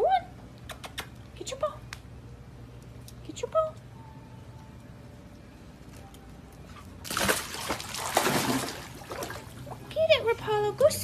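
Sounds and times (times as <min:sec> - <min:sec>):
water splashing and sloshing: 0:06.7 - 0:10.4.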